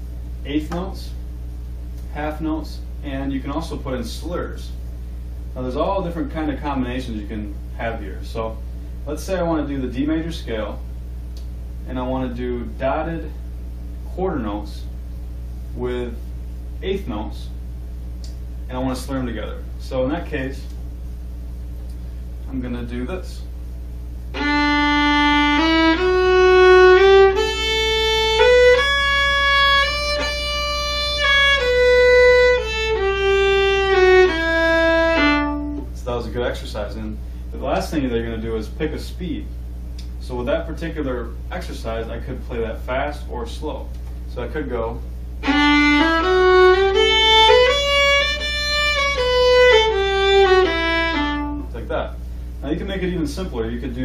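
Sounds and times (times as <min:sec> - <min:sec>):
violin playing a scale: 0:24.3 - 0:35.9, 0:45.4 - 0:51.8.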